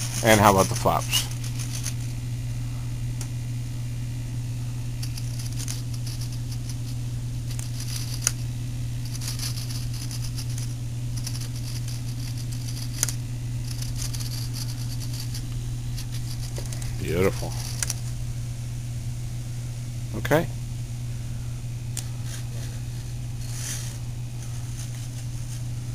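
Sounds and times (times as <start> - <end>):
servos buzzing: 0.0 - 3.4, 4.6 - 19.2, 21.5 - 25.9
steady low hum: 0.0 - 25.9.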